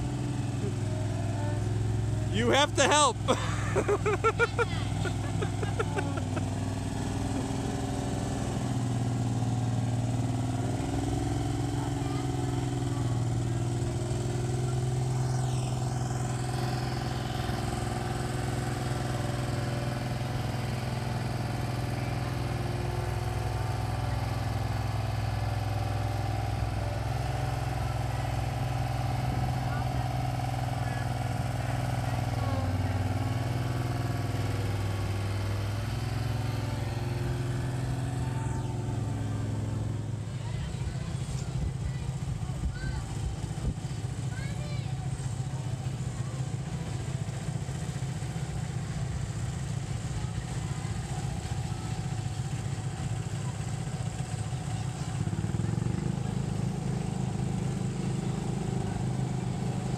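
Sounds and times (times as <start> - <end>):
drum roller engine running: 0.0 - 59.9.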